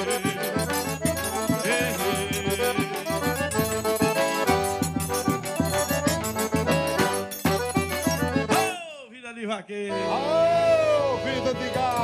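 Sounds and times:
accordions playing chords: 0.0 - 8.8, 9.9 - 12.0.

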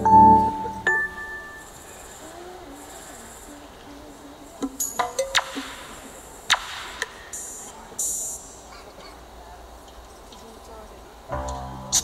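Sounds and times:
low hall noise: 0.0 - 12.0
cymbal hissing bursts: 4.8 - 8.7
low held note: 11.3 - 12.0.

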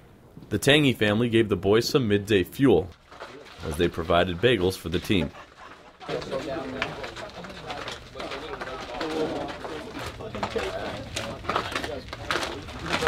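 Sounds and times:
low chatter of people talking: 3.1 - 13.0.

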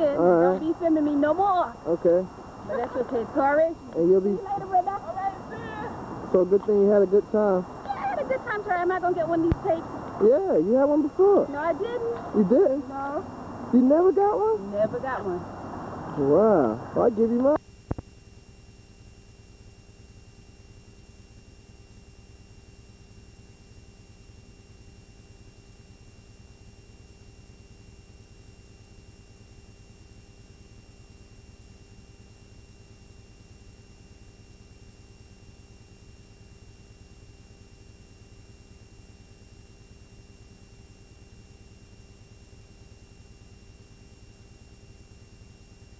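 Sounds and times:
faint steady tones: 0.0 - 45.9
videotape hiss and low hum: 0.0 - 45.9.

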